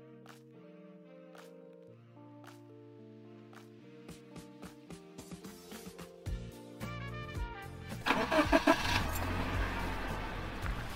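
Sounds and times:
car engine starting: 8.0 - 10.9.

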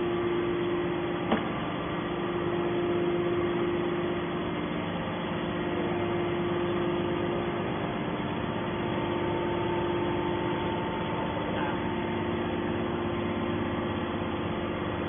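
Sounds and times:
hydraulic power unit humming: 0.0 - 15.0.

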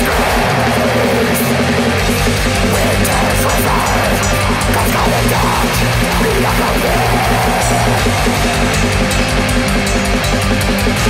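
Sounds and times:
distorted electric guitars: 0.0 - 11.0
fast drumming with cymbals: 0.0 - 11.0.

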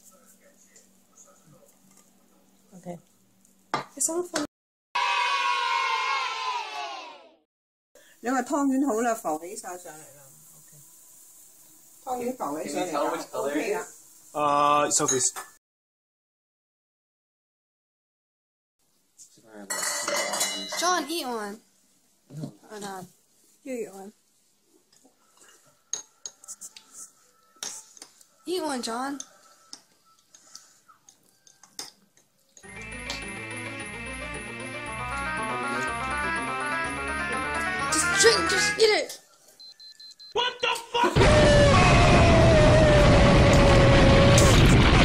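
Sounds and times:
crowd cheering: 5.0 - 7.4, 40.4 - 45.0.

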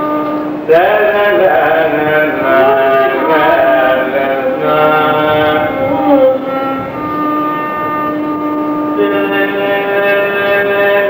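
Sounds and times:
classical indian music held note: 0.0 - 11.0.

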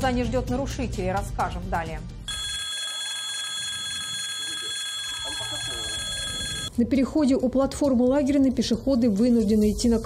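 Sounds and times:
crossing alarm bell ringing: 2.3 - 6.7.

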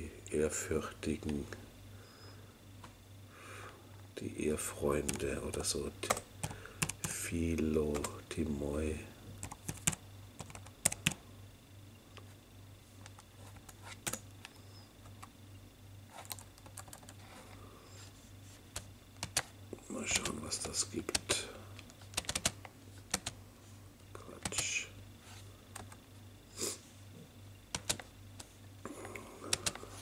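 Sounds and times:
faint low hum: 0.0 - 30.0
laptop keyboard typing: 5.0 - 7.2, 7.9 - 8.1, 9.4 - 11.2, 13.1 - 15.3, 16.1 - 17.3, 18.7 - 19.5, 22.0 - 23.4, 25.7 - 26.0, 27.7 - 28.1, 29.4 - 29.8.

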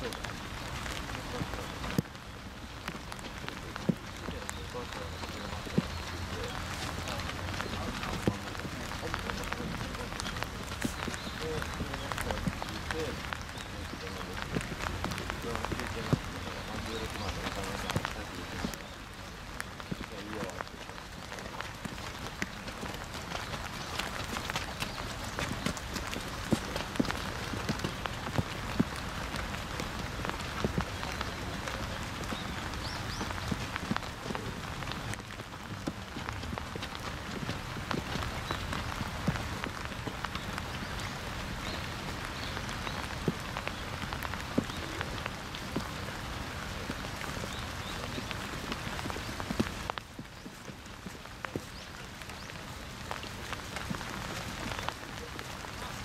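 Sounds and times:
raindrop ticks: 0.0 - 56.0
steady rain: 0.0 - 56.0.

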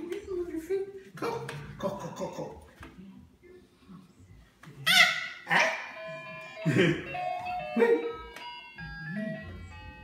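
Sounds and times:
electronic toy beeping tune: 6.0 - 10.0.

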